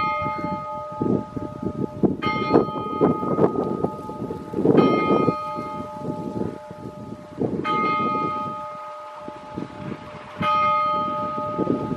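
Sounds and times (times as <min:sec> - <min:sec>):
smaller bells ringing quickly: 0:00.0 - 0:09.6, 0:10.4 - 0:11.9
large church bell struck: 0:00.0 - 0:11.9.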